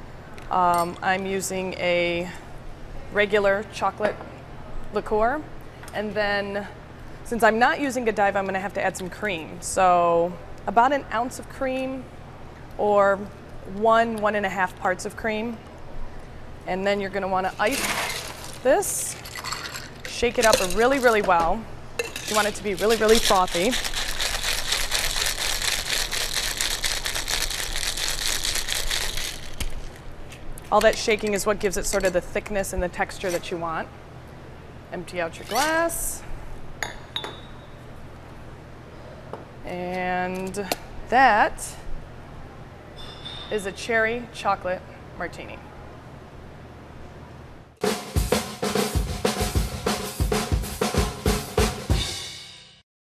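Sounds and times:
ice rattling in cocktail shaker: 0:17.5 - 0:21.3, 0:22.0 - 0:30.0
music jingle with drum beat: 0:47.8 - 0:52.8.

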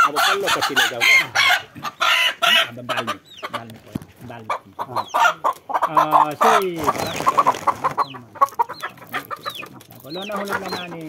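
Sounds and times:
chicken clucking and squawking: 0:00.0 - 0:11.0.

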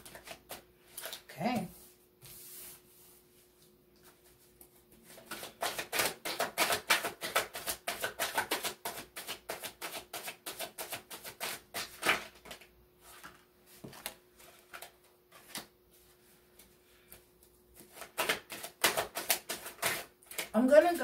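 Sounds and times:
cards being shuffled: 0:00.0 - 0:01.3, 0:05.1 - 0:15.7, 0:17.8 - 0:20.5.

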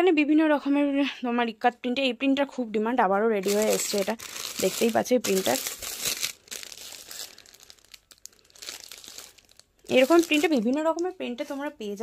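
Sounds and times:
plastic packaging crinkling: 0:03.4 - 0:11.7.

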